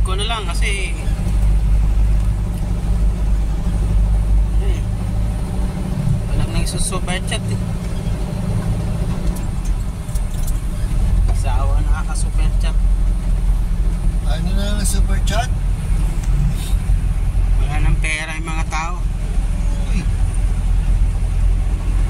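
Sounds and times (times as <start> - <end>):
vehicle engine and road drone: 0.0 - 22.0.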